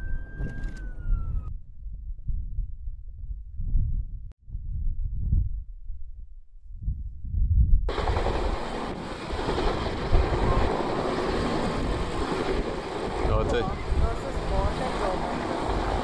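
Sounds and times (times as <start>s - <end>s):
wind on microphone: 0.0s - 16.0s
helicopter flying by: 7.9s - 16.0s.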